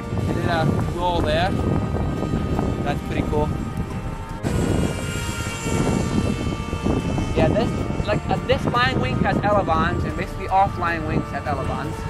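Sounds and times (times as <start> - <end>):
electric motor and propeller whining: 0.0 - 12.0.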